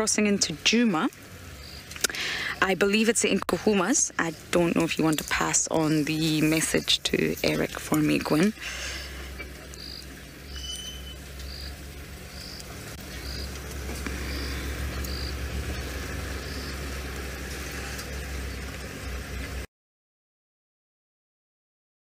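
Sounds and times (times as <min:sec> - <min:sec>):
steady low hum: 0:00.0 - 0:19.7
insect chirping: 0:01.3 - 0:19.1.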